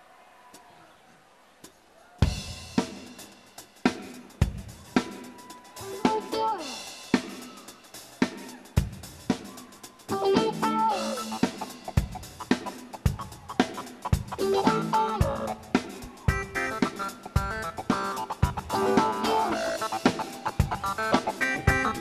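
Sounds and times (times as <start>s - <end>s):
drum kit beat: 2.2s - 22.0s.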